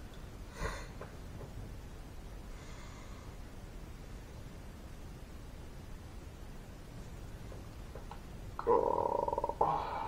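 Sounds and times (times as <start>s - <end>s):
man groaning: 8.6s - 10.0s.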